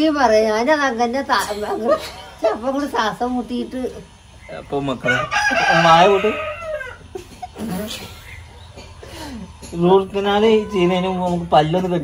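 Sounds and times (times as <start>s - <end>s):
rooster crowing: 4.9s - 7.4s.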